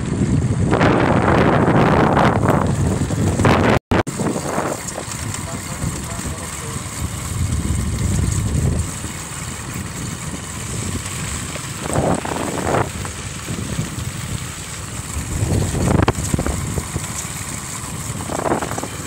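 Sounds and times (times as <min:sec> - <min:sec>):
low travelling rumble: 0:00.0 - 0:19.0
wind buffeting microphone: 0:00.0 - 0:19.0.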